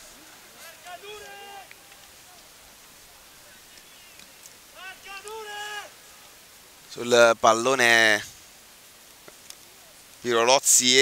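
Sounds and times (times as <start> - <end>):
distant shouts: 0.0 - 6.8
faint open-air ambience: 0.0 - 11.0.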